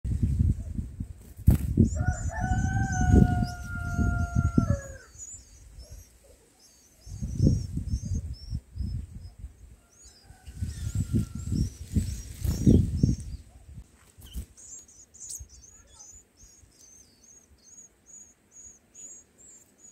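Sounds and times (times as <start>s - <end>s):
small birds chirping: 0.1s - 19.9s
distant rooster crowing: 1.8s - 5.3s, 9.8s - 11.7s.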